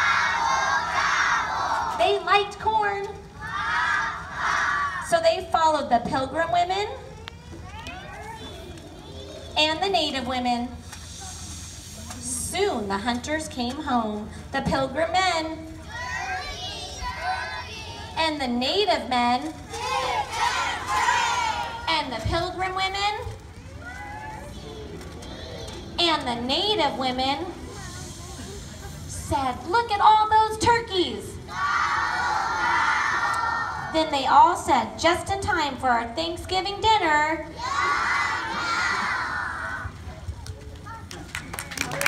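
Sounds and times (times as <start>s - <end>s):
children chanting in unison: 0.0s - 2.0s, 19.7s - 21.8s
children cheering: 31.5s - 33.9s, 37.6s - 40.0s.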